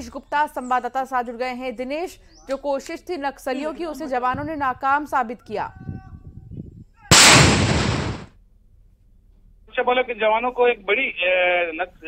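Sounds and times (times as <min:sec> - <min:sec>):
explosion: 0:07.1 - 0:08.3.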